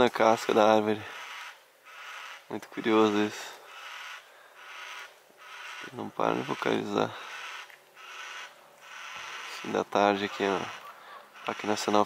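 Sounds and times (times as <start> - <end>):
cockatoo calling: 0.2 - 12.0.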